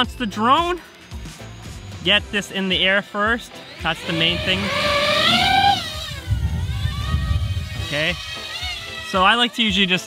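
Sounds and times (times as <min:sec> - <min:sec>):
drone motors whining: 0:03.5 - 0:09.3
low rumble of rotor wash: 0:03.8 - 0:08.1.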